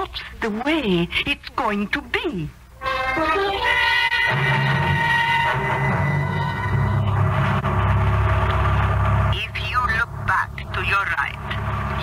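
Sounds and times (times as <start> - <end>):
boat engine drone: 3.6 - 12.0.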